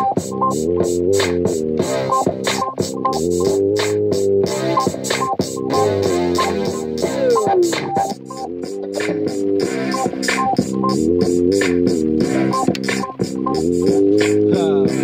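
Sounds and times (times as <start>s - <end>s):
drum machine beat: 0.0s - 15.0s
held synthesizer chords: 0.0s - 15.0s.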